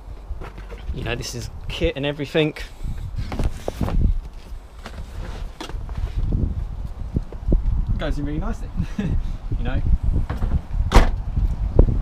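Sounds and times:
microphone handling rumble: 0:00.2 - 0:02.0, 0:02.9 - 0:12.0.

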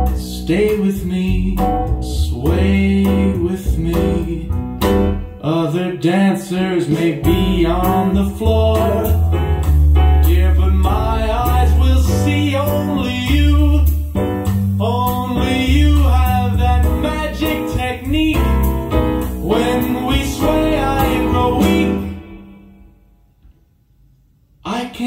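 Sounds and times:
band song over loudspeakers: 0:06.9 - 0:22.5.

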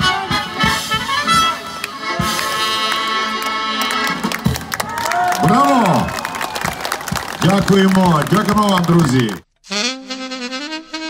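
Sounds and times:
folk band playing: 0:00.0 - 0:05.2
people clapping: 0:01.8 - 0:09.4.

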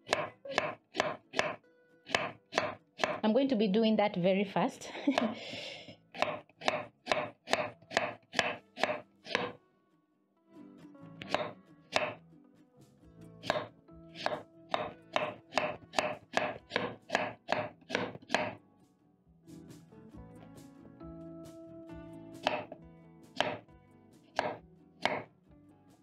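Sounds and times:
knife chopping on wooden board: 0:00.0 - 0:03.2, 0:06.2 - 0:09.6, 0:11.2 - 0:12.2, 0:13.4 - 0:18.6, 0:22.4 - 0:22.8, 0:23.4 - 0:23.6, 0:24.3 - 0:25.3
soft background music: 0:00.0 - 0:26.0.

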